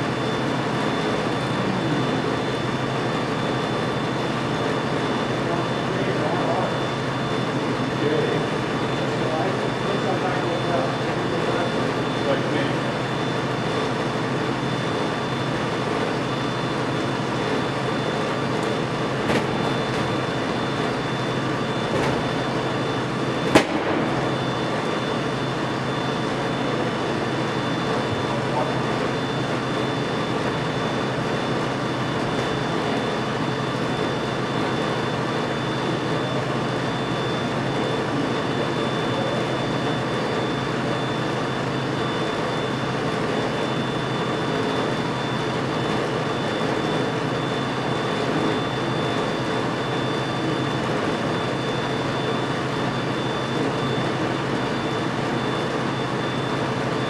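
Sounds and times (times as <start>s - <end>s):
mechanical hum and hiss: 0.0s - 57.0s.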